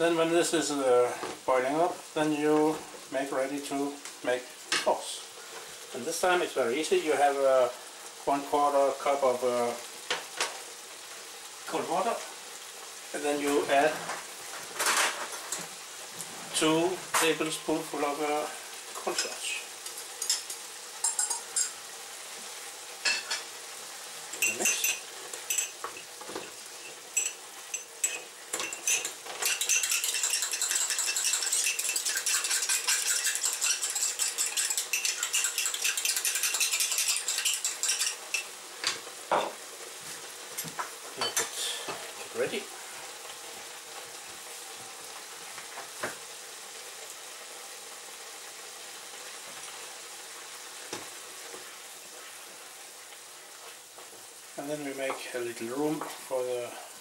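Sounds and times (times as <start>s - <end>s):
food sizzling in pan: 0.0s - 57.0s
metal spoon clinking in cup: 21.0s - 21.7s, 27.2s - 38.5s
utensils knocking: 28.0s - 38.2s.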